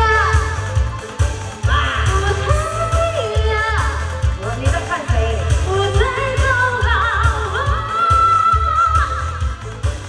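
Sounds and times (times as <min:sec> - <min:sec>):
backing track with heavy bass beat: 0:00.0 - 0:10.0
woman singing pop song: 0:00.0 - 0:10.0.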